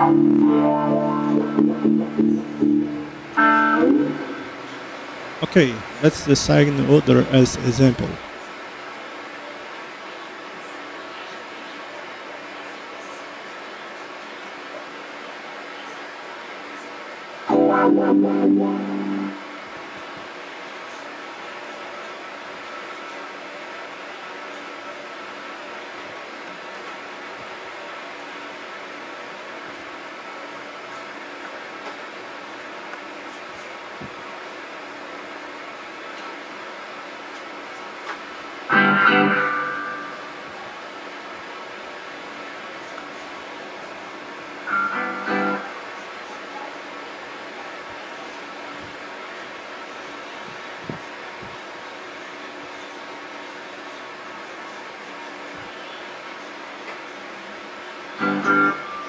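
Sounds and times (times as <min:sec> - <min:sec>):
electric guitar chords: 0:00.0 - 0:08.2, 0:17.5 - 0:19.9, 0:38.7 - 0:40.6, 0:44.6 - 0:45.8, 0:58.2 - 0:59.0
steady hiss: 0:04.0 - 0:08.5.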